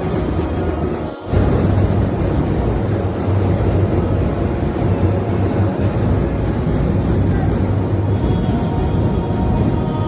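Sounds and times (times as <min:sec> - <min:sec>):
dense crowd noise: 0:00.0 - 0:10.0
heavy low rumble: 0:00.0 - 0:10.0.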